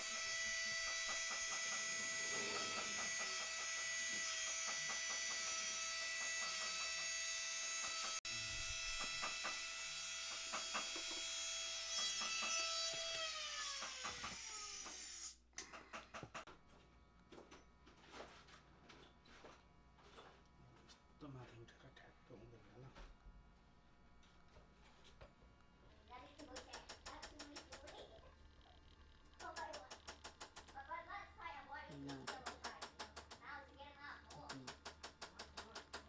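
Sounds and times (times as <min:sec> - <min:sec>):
cutter ticking on metal: 0:00.0 - 0:08.2, 0:26.4 - 0:28.1, 0:28.8 - 0:30.8, 0:31.9 - 0:33.4, 0:34.3 - 0:36.0
rotary engraving tool whine: 0:00.0 - 0:15.4.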